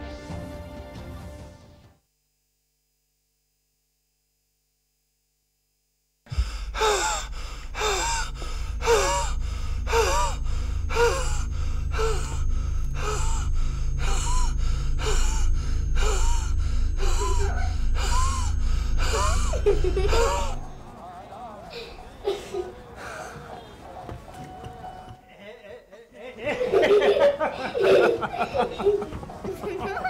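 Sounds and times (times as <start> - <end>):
man gasping for breath: 6.3 - 20.6
low steady drone: 6.3 - 24.0.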